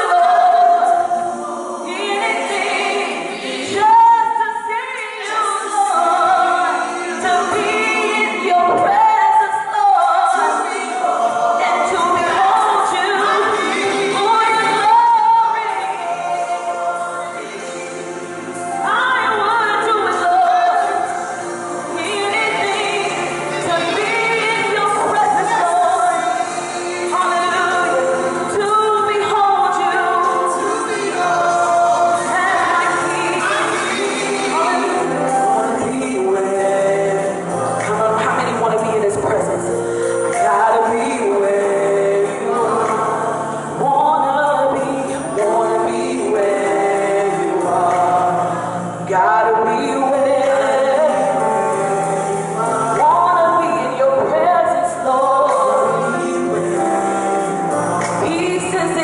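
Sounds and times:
women singing a praise song: 0:00.0 - 0:59.0.

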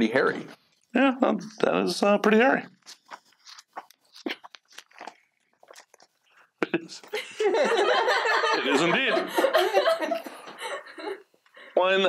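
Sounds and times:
magazine pages crinkling: 0:02.7 - 0:06.2.

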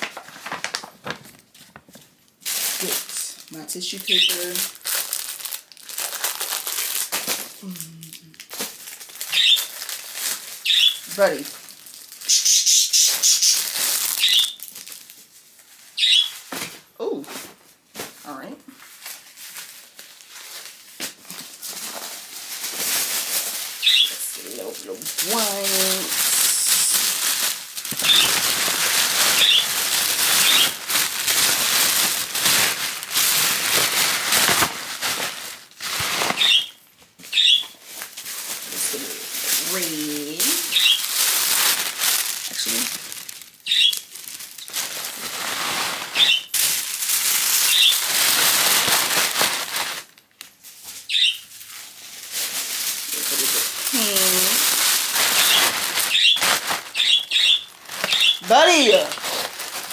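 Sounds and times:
tissue paper rustling: 0:00.0 - 0:59.9.

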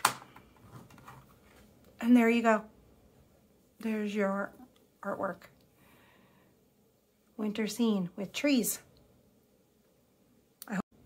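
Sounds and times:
faint handling sounds: 0:00.1 - 0:02.0.

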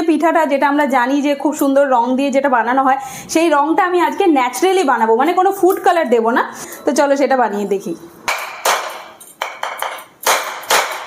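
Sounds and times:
metal tool knocking coconut: 0:08.3 - 0:11.0.

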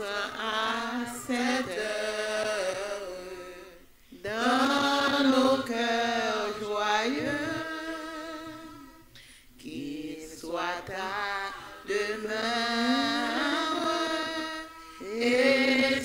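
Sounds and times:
voices singing a hymn: 0:00.0 - 0:16.0.

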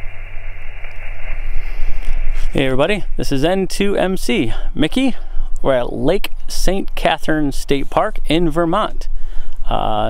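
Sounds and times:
low rumble: 0:00.0 - 0:10.0
radio band noise hiss: 0:00.0 - 0:10.0.

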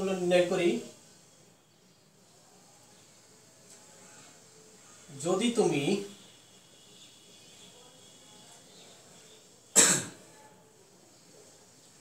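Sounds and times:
man coughing: 0:09.8 - 0:10.2.

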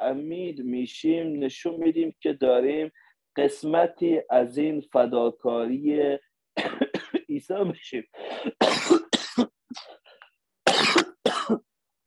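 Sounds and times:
man speaking: 0:00.0 - 0:06.4, 0:07.0 - 0:08.2
man coughing: 0:06.6 - 0:07.4, 0:08.2 - 0:09.8, 0:10.6 - 0:11.7.

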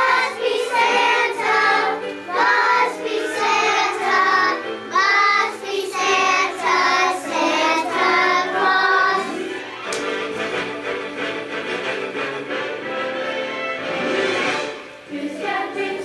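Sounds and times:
children singing in unison: 0:00.0 - 0:09.5, 0:15.0 - 0:16.0
instrumental accompaniment: 0:00.0 - 0:16.0.

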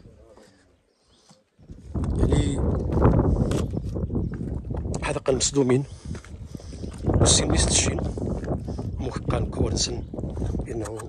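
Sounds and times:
footsteps on loose stone rubble: 0:01.6 - 0:11.0.

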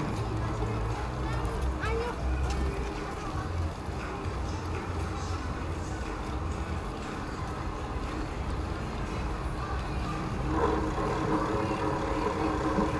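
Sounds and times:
traffic rumble: 0:00.0 - 0:12.9
steady multi-pitched hum: 0:09.6 - 0:12.9.

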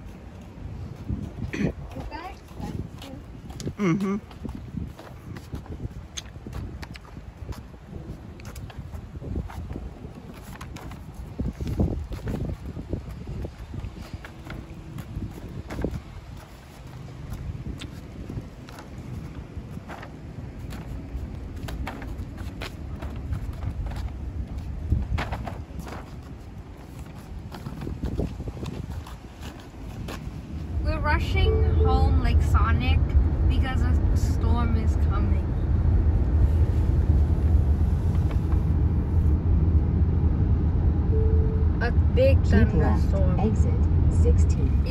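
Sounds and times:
footsteps on asphalt: 0:00.0 - 0:30.8
wind rumbling on microphone: 0:00.0 - 0:44.9.

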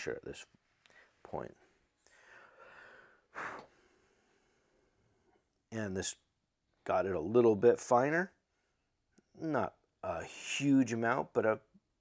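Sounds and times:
short breath through nose: 0:02.1 - 0:04.7.

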